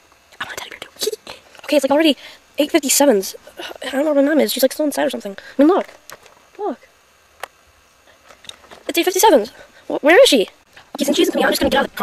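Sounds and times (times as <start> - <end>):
boy speaking: 0.4 - 5.9, 6.6 - 6.9, 8.8 - 12.0.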